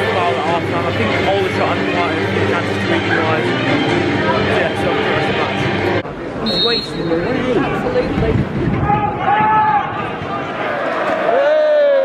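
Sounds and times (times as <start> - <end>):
crowd chatter: 0.0 - 12.0
referee's whistle: 6.4 - 7.1.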